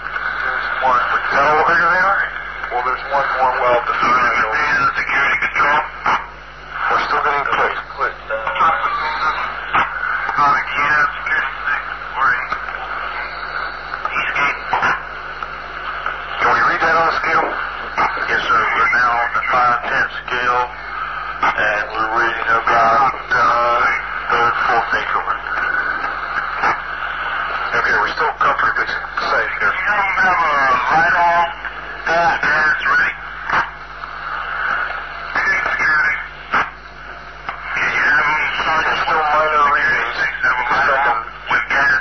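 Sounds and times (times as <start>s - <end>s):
steady low hum: 0.0s - 42.0s
tape hiss: 0.0s - 42.0s
men talking: 0.2s - 15.2s, 15.8s - 42.0s.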